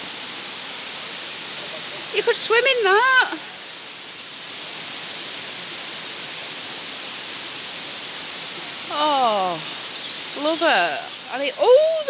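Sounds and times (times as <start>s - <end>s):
water rushing over stones: 0.0s - 12.0s.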